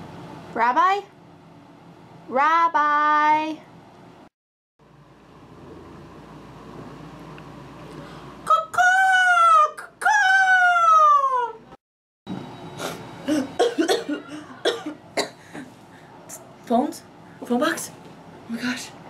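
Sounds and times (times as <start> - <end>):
person yelling: 8.5 - 11.6.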